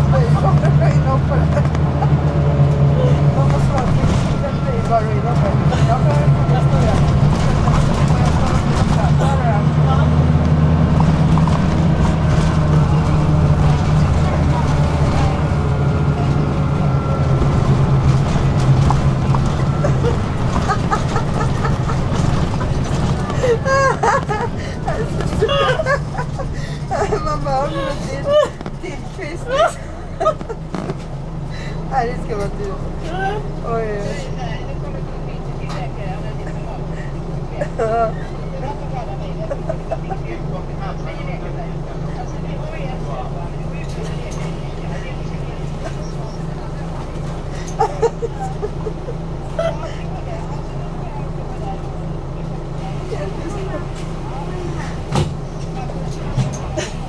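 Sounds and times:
bus engine idling: 0.0 - 57.0
faint voices: 0.0 - 57.0.

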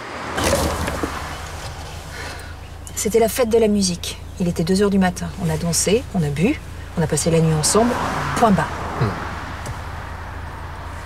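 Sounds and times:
car passing: 0.0 - 3.1, 4.5 - 11.0
low vehicle rumble: 0.0 - 11.0.

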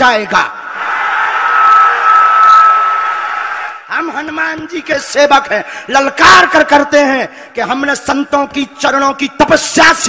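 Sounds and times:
crowd cheering and shouting: 0.4 - 4.0
steady high tone: 0.6 - 4.0.

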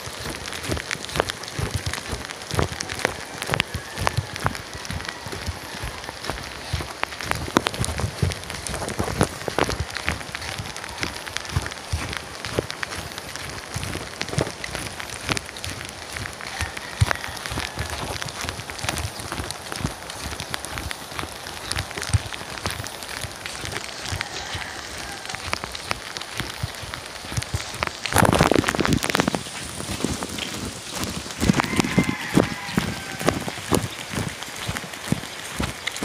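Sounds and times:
steady rain: 0.0 - 36.0.

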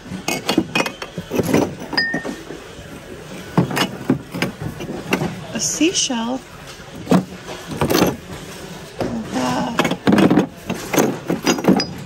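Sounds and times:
mugs and glass clinking: 0.1 - 2.5.

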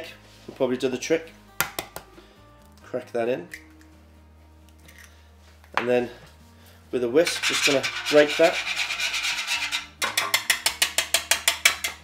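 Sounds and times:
whisk scraping a tray: 7.2 - 10.4
whisk clicking on a tray: 10.0 - 12.0.

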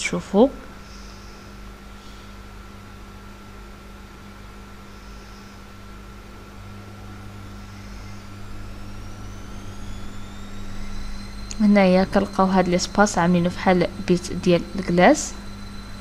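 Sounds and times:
engine whine rising in pitch: 0.6 - 16.0.

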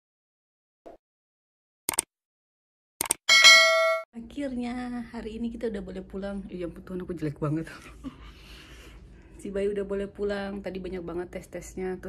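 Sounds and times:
bright bell ding: 3.3 - 4.1.

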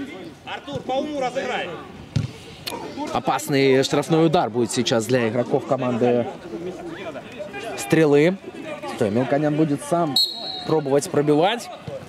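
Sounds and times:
men talking outdoors: 0.0 - 12.0.

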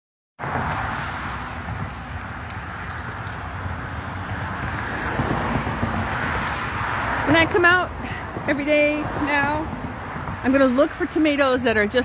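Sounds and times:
rushing outdoor background noise: 0.4 - 12.0.

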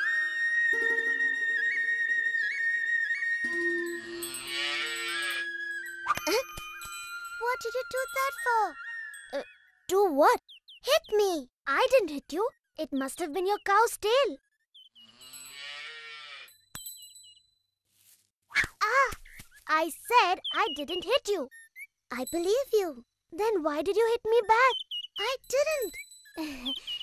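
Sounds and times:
calf mooing: 4.0 - 5.4, 15.0 - 16.5.

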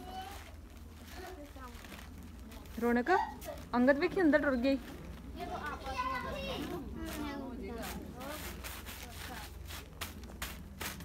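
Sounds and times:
children chattering and calling: 0.0 - 9.7.

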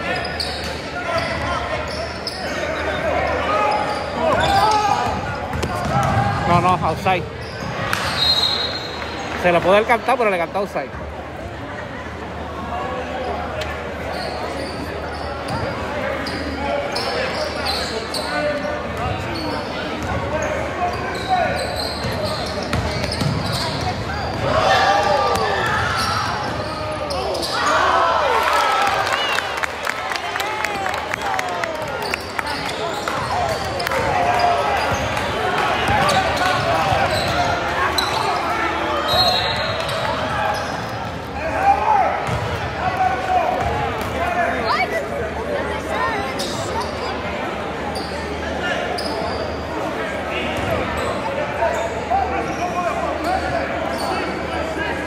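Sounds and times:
voices of spectators and players: 0.0 - 55.0.

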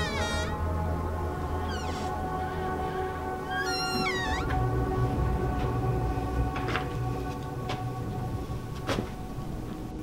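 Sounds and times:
eerie music drone: 0.0 - 10.0.

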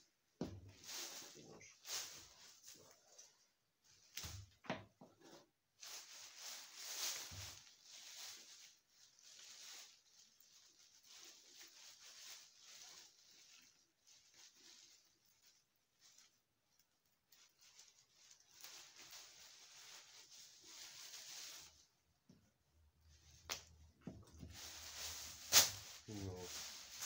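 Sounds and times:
twigs rustling and scraping: 5.2 - 22.0, 23.2 - 27.0.

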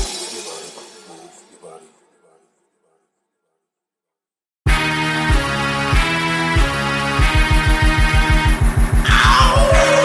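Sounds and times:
echoing vocal fragments: 9.0 - 10.0.

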